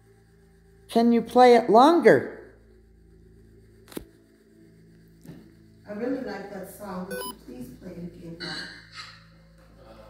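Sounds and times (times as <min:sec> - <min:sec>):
short electronic beep: 0:07.1 - 0:07.4.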